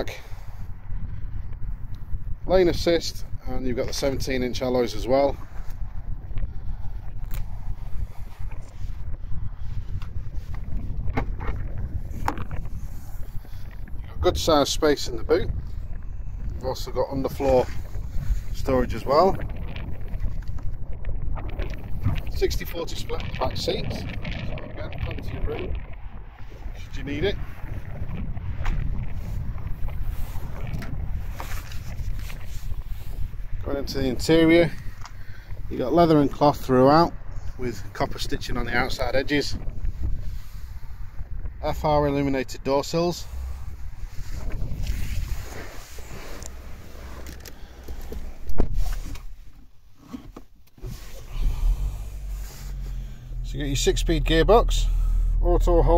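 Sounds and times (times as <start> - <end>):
wind buffeting microphone: 0.0 - 55.9
faint rustling: 43.1 - 55.5.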